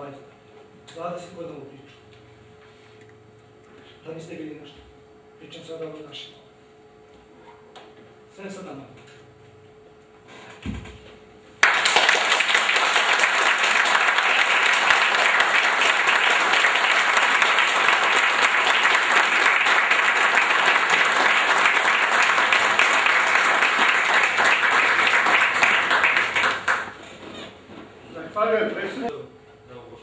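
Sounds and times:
audience applause: 11.6 - 27.2.

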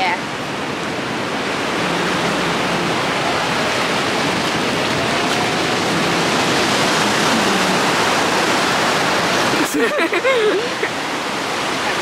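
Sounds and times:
ocean surf breaking on shore: 0.0 - 12.0.

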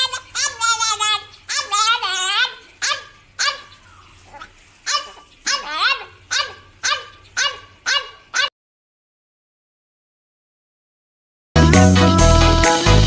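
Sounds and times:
small dog yelping barks: 0.4 - 8.5.

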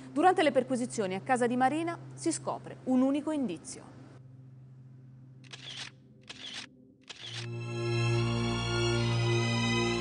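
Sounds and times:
camera shutter: 5.4 - 7.6.

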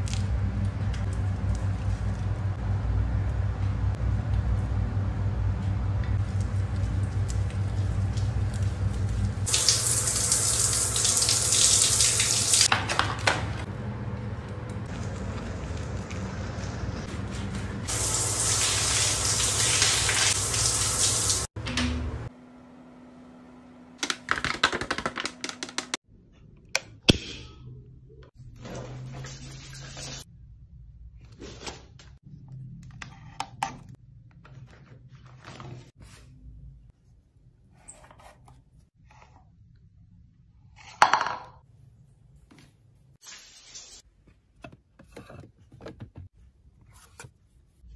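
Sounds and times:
running water spraying: 7.5 - 12.7, 17.8 - 21.5.

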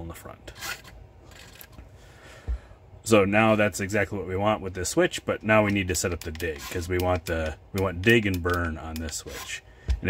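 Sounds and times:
radio transmitter handling noise: 5.4 - 10.0.

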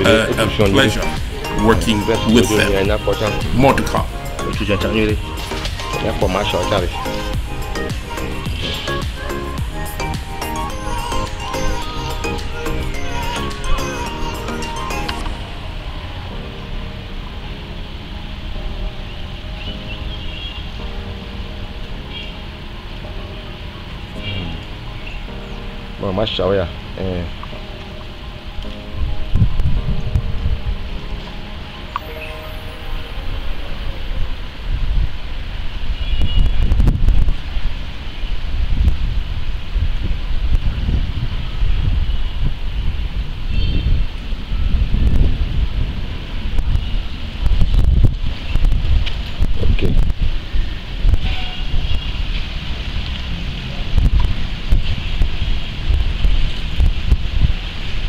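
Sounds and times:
faint background music: 0.0 - 35.6
wind buffeting microphone: 28.6 - 31.1, 33.5 - 58.0.

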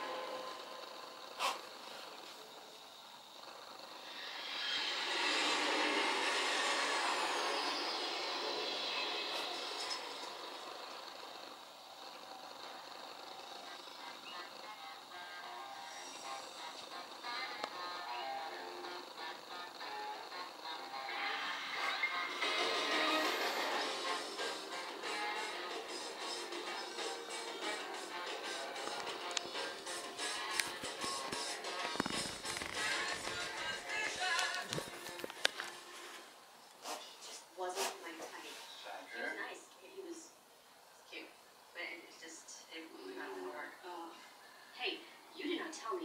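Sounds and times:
television music and sound effects: 0.0 - 46.0.

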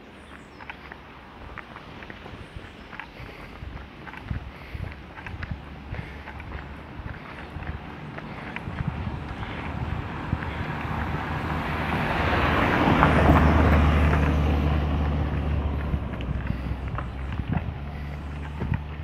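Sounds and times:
car passing by: 0.6 - 19.0.

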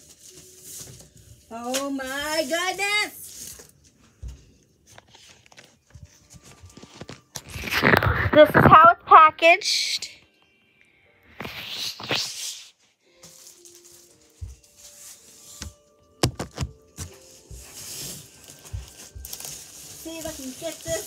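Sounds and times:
cardboard box rustling and scraping: 16.4 - 21.0.

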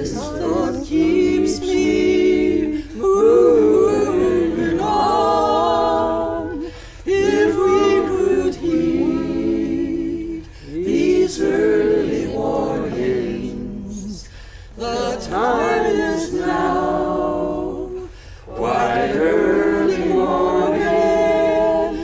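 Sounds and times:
group singing in unison: 0.0 - 22.0.

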